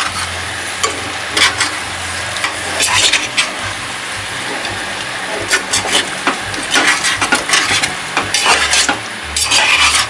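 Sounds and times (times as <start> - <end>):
steel spatula scraping a pot: 0.0 - 1.8, 2.4 - 3.7, 4.5 - 10.0
food sizzling in a pot: 0.0 - 10.0.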